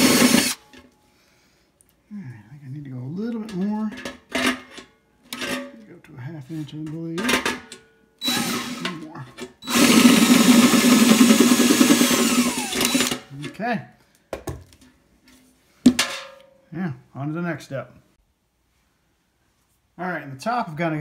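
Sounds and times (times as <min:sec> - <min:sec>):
drill boring into metal can: 0:00.0 - 0:00.6, 0:08.2 - 0:13.2.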